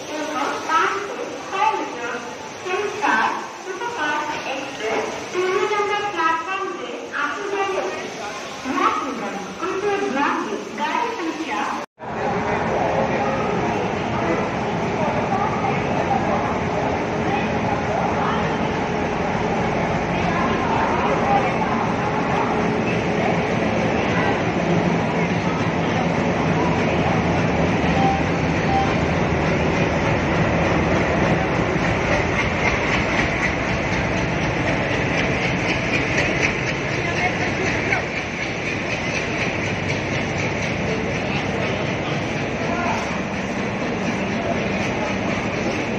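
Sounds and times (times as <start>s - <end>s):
diesel locomotive engine: 0.0s - 45.9s
wheels on rails: 14.8s - 45.9s.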